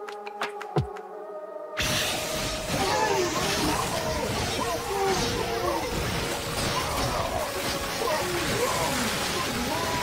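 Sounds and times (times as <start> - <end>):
loud steady rushing noise: 1.8 - 10.0
voices: 2.6 - 10.0.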